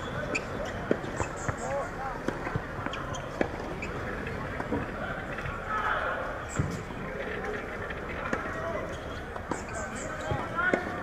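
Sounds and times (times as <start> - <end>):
outdoor background noise: 0.0 - 11.0
tennis ball bouncing on court: 0.3 - 1.6, 2.2 - 5.6, 8.2 - 8.6, 9.3 - 11.0.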